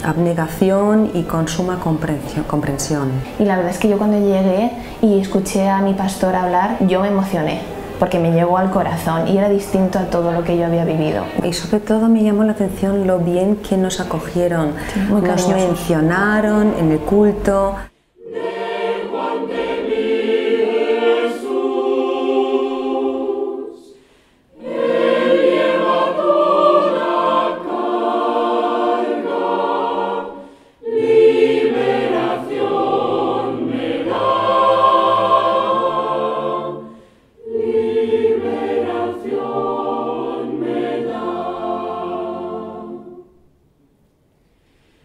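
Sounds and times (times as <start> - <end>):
singers breathing: 4.8 - 5.0, 14.7 - 15.2, 23.8 - 24.6, 30.3 - 30.9, 36.8 - 37.4, 44.4 - 45.0
mixed choir singing: 14.0 - 17.4, 18.2 - 43.5.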